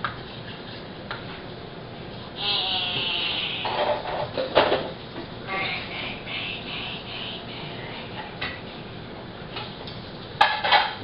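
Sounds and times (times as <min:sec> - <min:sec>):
brief high-pitched vocal sound: 0:05.5 - 0:08.2.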